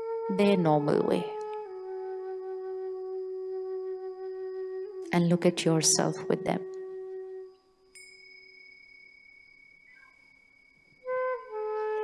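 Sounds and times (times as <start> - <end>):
soft meditation music: 0.0 - 12.0
soft chime ringing: 7.5 - 12.0.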